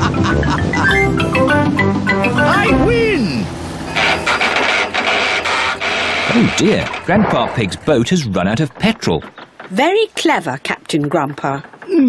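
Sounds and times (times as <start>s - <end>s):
music: 0.0s - 3.9s
falling whine: 1.9s - 8.1s.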